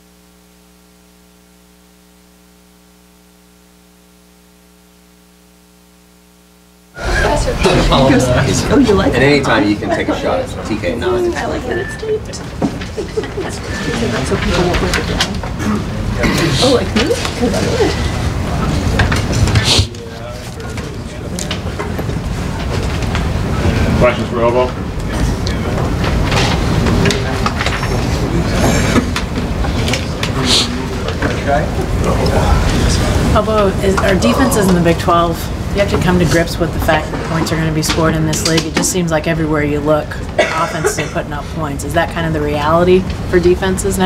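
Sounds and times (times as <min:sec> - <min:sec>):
electrical mains hum: 0:00.0 - 0:44.0
low voices: 0:07.0 - 0:44.0.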